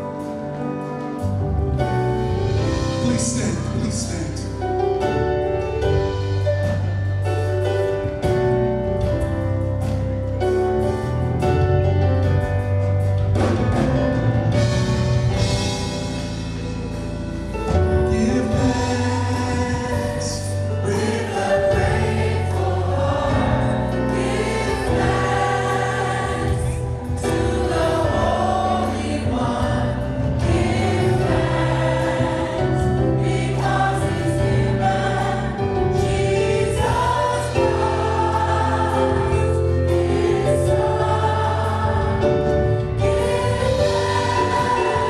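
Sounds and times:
group singing gospel song: 17.7 - 45.0.

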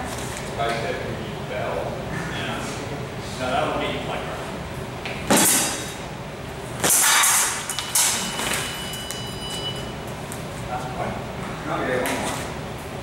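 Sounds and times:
fencing blades and footwork: 6.8 - 10.5.

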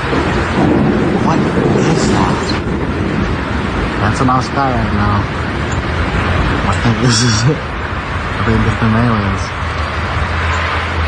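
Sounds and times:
thunder rumbling: 0.0 - 11.0.

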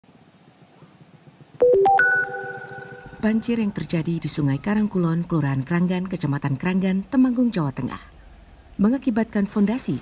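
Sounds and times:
quick synthesizer note run: 1.6 - 3.8
electronic jingle: 1.6 - 3.9.

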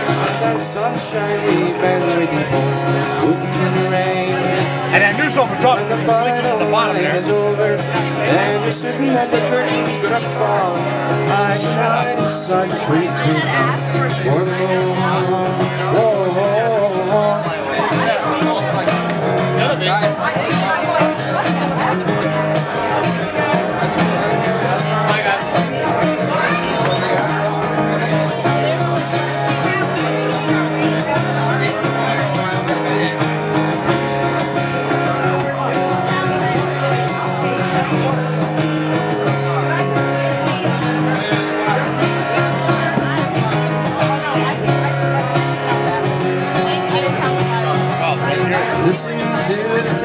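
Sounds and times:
man singing: 0.0 - 50.0
strummed acoustic guitar: 0.0 - 50.0.

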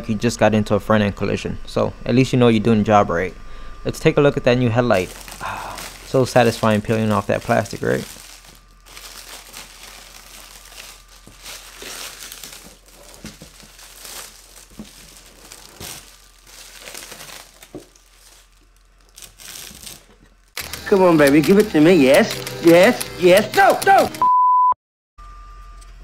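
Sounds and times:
plastic film peeling and crinkling: 4.9 - 24.0.

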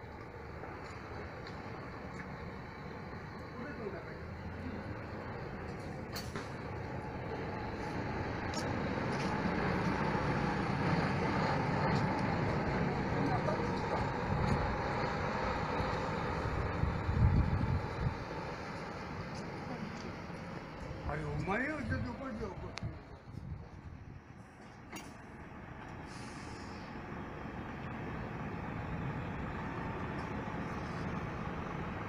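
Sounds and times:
diesel coach driving past: 0.0 - 32.0.

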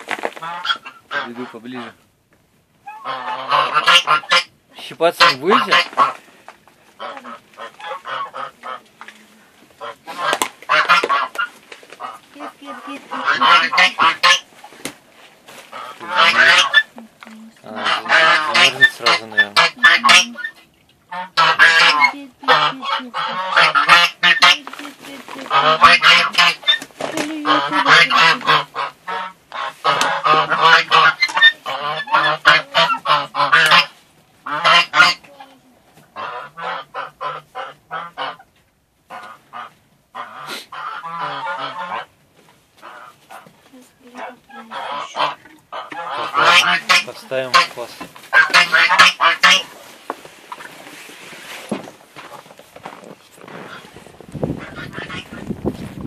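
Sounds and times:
geese honking: 0.4 - 2.0, 2.8 - 6.3, 7.0 - 8.9, 9.8 - 14.5, 15.6 - 17.0, 17.7 - 35.3, 36.1 - 38.5, 39.1 - 42.2, 42.8 - 50.8, 53.5 - 55.5.

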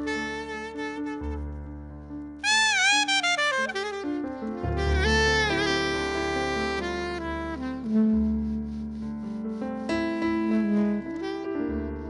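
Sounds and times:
saxophone notes: 0.0 - 12.0.

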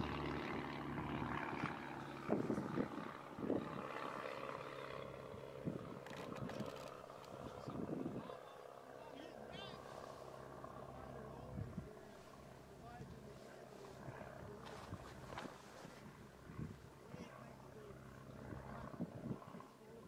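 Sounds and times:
low volcanic rumble: 0.0 - 8.4, 9.8 - 20.0
distant murmur of voices: 0.1 - 20.0.

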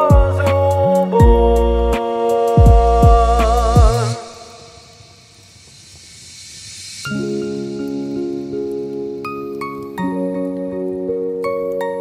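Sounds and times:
soft even hiss: 0.0 - 12.0.

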